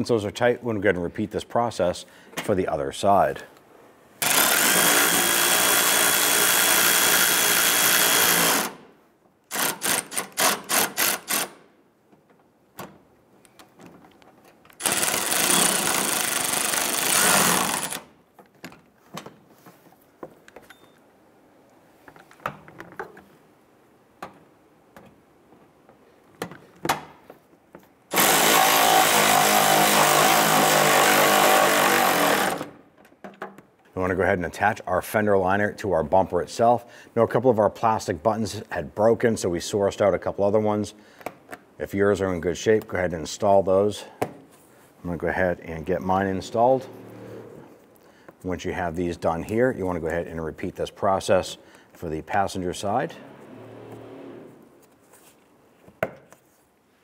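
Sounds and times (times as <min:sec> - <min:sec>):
power tool driving screws: 0:04.2 - 0:08.9, 0:09.5 - 0:11.6, 0:14.7 - 0:18.1, 0:28.1 - 0:32.8.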